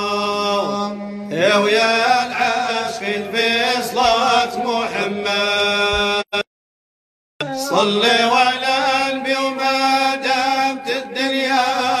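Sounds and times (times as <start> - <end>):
person chanting ornamented notes: 7.4 - 12.0.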